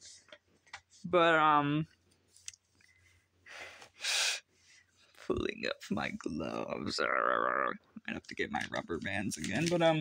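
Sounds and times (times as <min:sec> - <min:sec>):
person sighing: 0:03.5 - 0:04.4.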